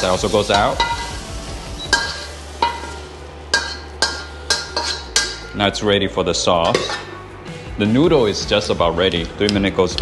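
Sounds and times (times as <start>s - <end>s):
metal spatula scraping a wok: 0.0s - 5.6s, 6.6s - 7.3s
food sizzling: 0.0s - 9.1s.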